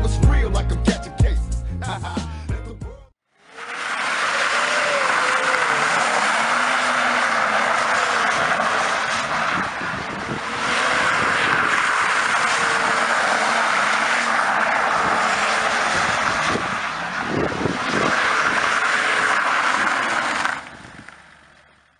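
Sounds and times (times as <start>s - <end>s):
car engine revving hard: 3.4s - 21.7s
tyres squealing: 3.6s - 21.2s.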